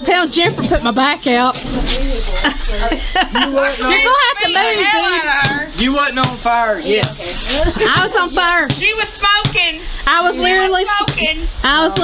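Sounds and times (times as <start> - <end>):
people talking: 0.0 - 12.0
people laughing: 2.2 - 5.2, 7.4 - 8.5.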